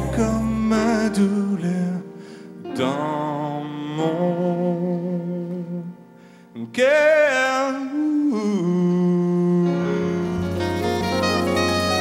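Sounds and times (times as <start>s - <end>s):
live band music: 0.0s - 1.9s, 9.6s - 12.0s.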